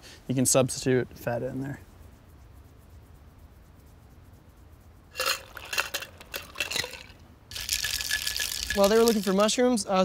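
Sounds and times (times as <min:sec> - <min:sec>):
clinks and scrapes: 0:05.2 - 0:09.5
metal cocktail shaker rattling: 0:05.2 - 0:09.6.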